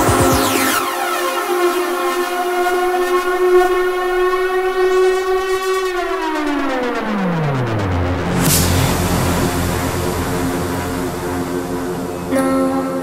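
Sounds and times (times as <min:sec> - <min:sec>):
synth tone sliding down: 0:00.0 - 0:13.0.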